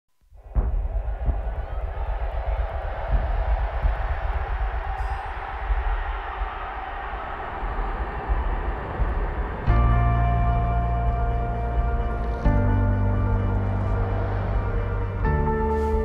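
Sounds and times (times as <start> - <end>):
dense rumbling noise: 0.3 - 16.0
ambient music drone: 9.6 - 16.0.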